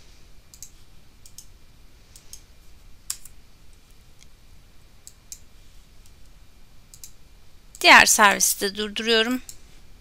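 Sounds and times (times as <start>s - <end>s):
mouse and keyboard clicks: 0.5s - 1.5s.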